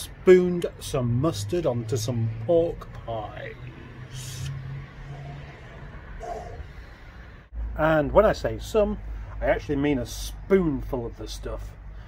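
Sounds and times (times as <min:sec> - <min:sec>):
faint vocal sound: 0:04.1 - 0:07.0.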